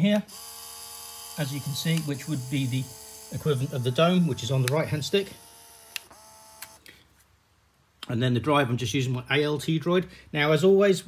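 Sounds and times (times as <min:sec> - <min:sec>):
small motor whirring: 0:00.2 - 0:06.8
motor click: 0:00.3 - 0:06.8.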